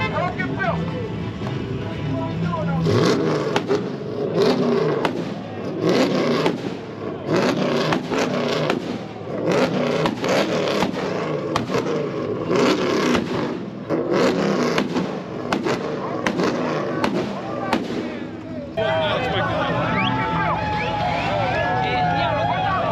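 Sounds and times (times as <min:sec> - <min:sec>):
car engine droning: 0:00.0 - 0:22.9
exhaust pops and bangs: 0:03.4 - 0:18.4.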